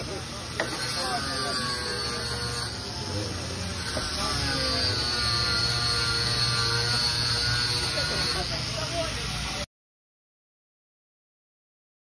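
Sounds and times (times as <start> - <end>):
faint voices: 0.0 - 9.7.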